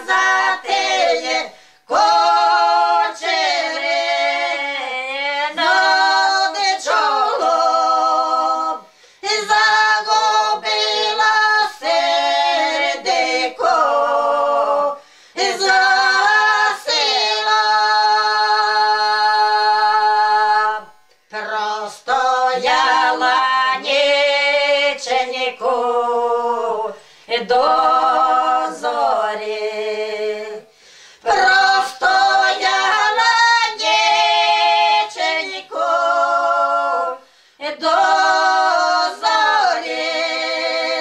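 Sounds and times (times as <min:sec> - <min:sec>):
women singing unaccompanied: 0:00.0 - 0:41.0.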